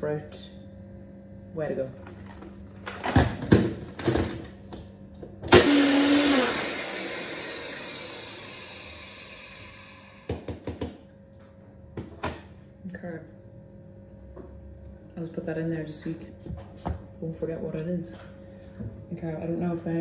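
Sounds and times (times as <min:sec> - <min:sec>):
blender blending ice: 0:05.5 - 0:10.3.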